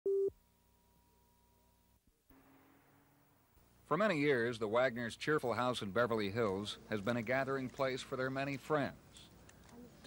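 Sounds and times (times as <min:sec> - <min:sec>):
short sine-tone beep: 0:00.1 - 0:00.3.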